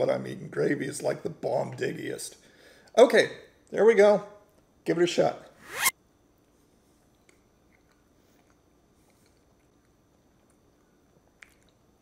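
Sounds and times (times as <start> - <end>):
chewing soft food: 7.0 - 12.0.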